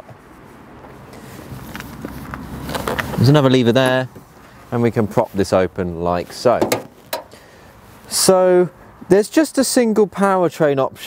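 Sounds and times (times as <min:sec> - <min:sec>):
footsteps on tarmac: 0:00.0 - 0:08.1.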